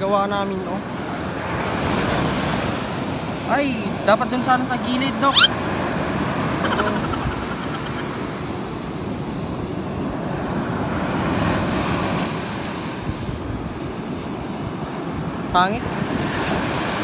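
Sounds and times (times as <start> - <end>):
waves breaking on sand: 0.0 - 17.0.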